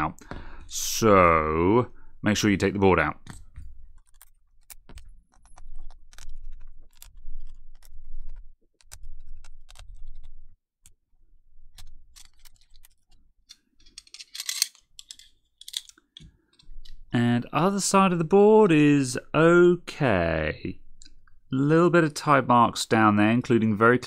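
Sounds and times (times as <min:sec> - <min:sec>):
metal tools clicking and tapping: 0:13.5 - 0:17.0.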